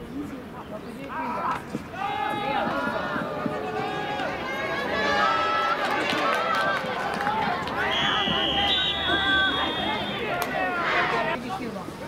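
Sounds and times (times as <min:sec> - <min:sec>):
crowd shouting and cheering: 0:01.3 - 0:11.4.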